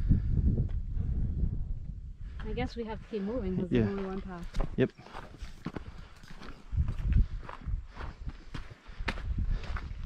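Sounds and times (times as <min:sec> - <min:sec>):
low rumble: 0:00.0 - 0:02.5
footsteps on gravel trail: 0:02.3 - 0:10.0.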